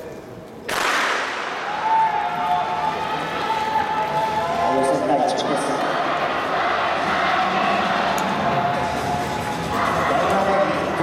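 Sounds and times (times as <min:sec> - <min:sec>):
starting gun crack with echo: 0:00.7 - 0:01.7.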